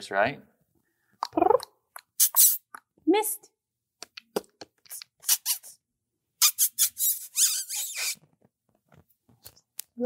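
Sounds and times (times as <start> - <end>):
high-pitched squeaks and chirps: 1.4 - 2.7, 4.9 - 5.8, 6.4 - 8.4.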